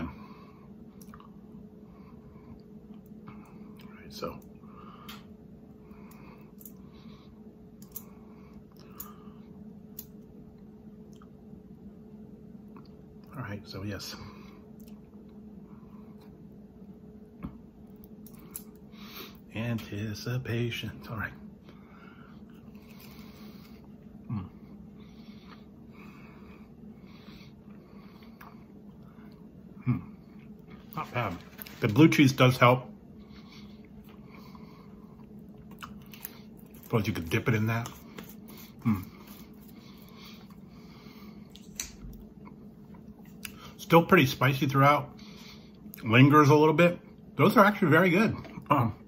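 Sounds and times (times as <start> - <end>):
low steady hum: 0.0 - 49.0
man chewing crunchy food: 1.0 - 1.4, 22.4 - 26.7, 33.2 - 43.8
man humming: 24.2 - 24.6.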